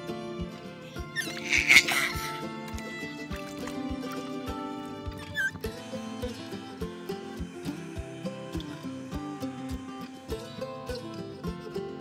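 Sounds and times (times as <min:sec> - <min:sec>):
background music with steady beat: 0:00.0 - 0:12.0
baby squealing with laughter: 0:01.2 - 0:02.3, 0:05.3 - 0:05.6.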